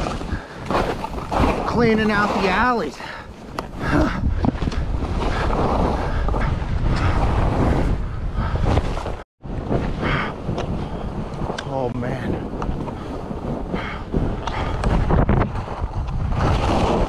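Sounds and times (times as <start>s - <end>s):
skis scraping through snow: 0.0s - 3.5s, 4.6s - 8.0s, 14.9s - 17.0s
wind on microphone: 0.0s - 17.0s.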